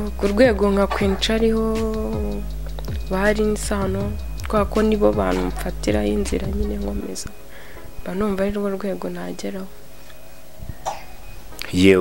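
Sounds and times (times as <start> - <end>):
man speaking: 11.6 - 12.0.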